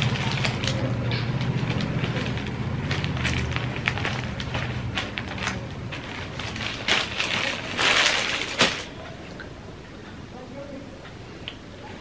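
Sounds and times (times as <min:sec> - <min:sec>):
fabric rustling: 0:01.6 - 0:09.0.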